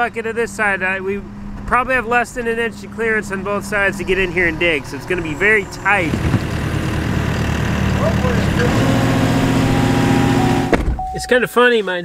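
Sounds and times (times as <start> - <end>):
excavator engine running: 0.0 - 11.1.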